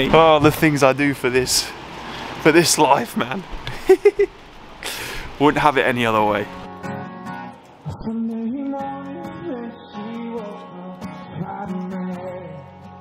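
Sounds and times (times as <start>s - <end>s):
acoustic guitar strummed: 6.5s - 13.0s
person singing: 7.8s - 13.0s.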